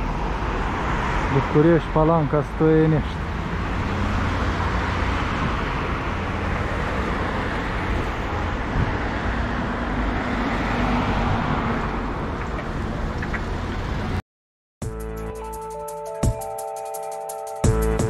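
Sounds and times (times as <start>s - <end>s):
road traffic passing: 0.0s - 14.2s.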